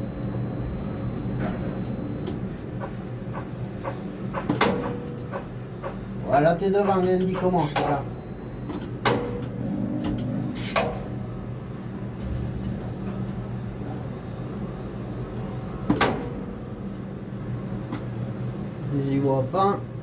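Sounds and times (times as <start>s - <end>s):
faint high whine: 0.0s - 4.2s, 7.6s - 8.9s
low machine hum: 0.0s - 20.0s.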